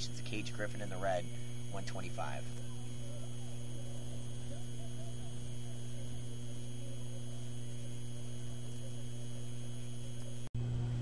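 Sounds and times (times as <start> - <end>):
higher buzzing tones: 0.0 - 10.5
low electrical hum: 0.0 - 11.0.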